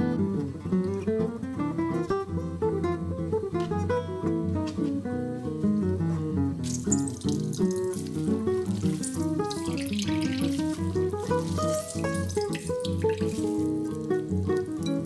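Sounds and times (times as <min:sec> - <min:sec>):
acoustic guitar music: 0:00.0 - 0:15.0
water dripping into glass bowl: 0:06.6 - 0:14.8.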